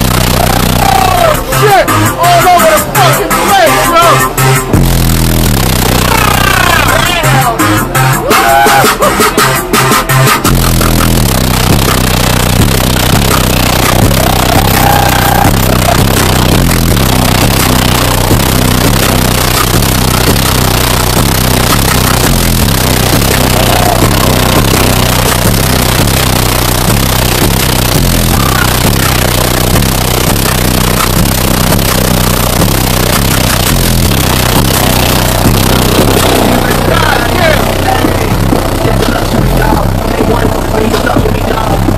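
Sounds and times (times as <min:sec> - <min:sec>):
bass-heavy electronic music: 0:00.0 - 0:41.9.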